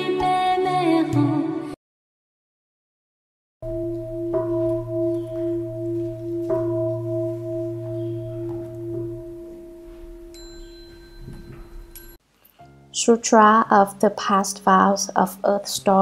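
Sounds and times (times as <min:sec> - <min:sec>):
singing bowl ringing: 0:03.6 - 0:12.2.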